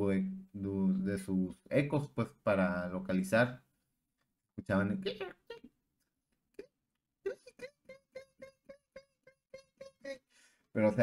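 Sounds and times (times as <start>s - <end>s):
man imitating bat squeaks: 7.3s - 10.2s.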